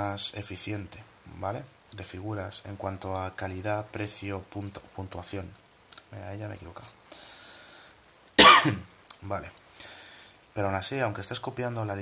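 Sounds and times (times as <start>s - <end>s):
faint breath: 7.1s - 8.0s, 9.7s - 10.4s
man coughing: 8.4s - 8.8s.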